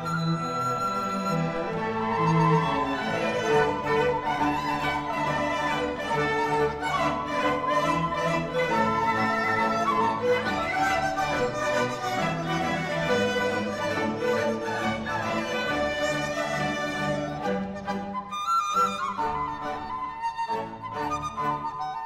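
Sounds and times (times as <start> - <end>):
bamboo flute melody: 0.0 - 22.0
bowed strings: 0.0 - 22.0.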